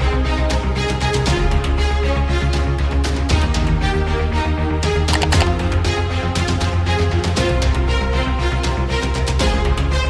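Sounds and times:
upbeat theme music: 5.1 - 5.7.

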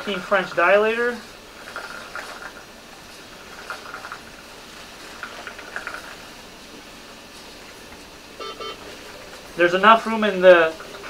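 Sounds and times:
faint rustles and clicks: 0.0 - 11.0
room hiss: 0.0 - 11.0.

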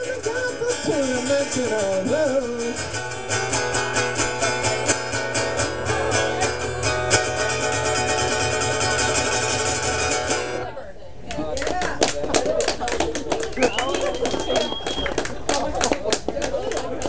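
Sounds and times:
guitar strumming: 0.0 - 10.7.

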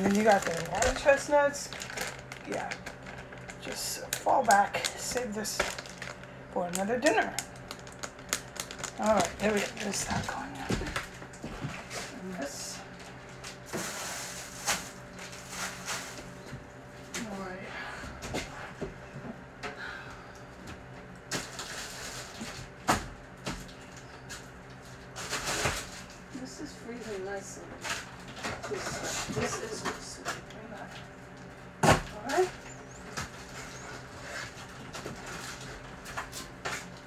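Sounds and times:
electrical hum: 0.0 - 37.0.

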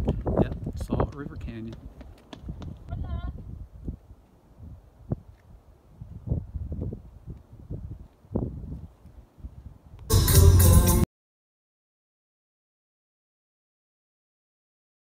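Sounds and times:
footsteps on rocky ground: 0.0 - 3.1
low wind rumble on microphone: 0.0 - 10.1.

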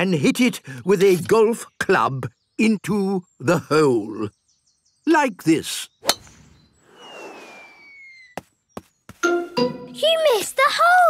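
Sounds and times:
whoosh with falling whistle: 6.8 - 8.4.

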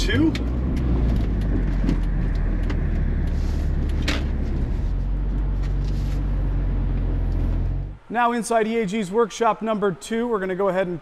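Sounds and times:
car engine drone from cabin: 0.0 - 8.1.

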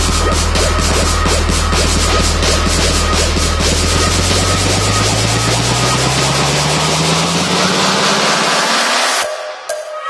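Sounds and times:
white noise sweep: 0.0 - 9.5
rising synth tone: 0.0 - 10.0.

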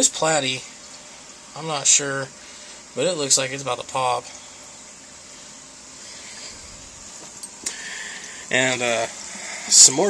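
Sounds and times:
aquarium filter water hiss: 0.0 - 10.0.

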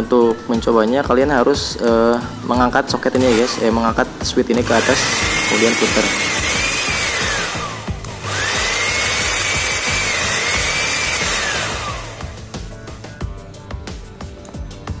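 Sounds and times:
blender motor whining: 3.1 - 12.5.

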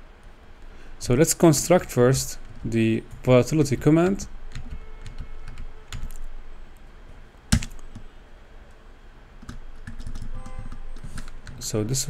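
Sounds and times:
typing on keyboard: 4.5 - 6.2, 9.4 - 11.6.

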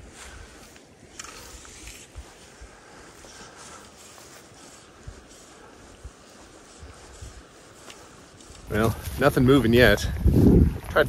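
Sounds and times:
fishing line rustling: 0.0 - 9.4.

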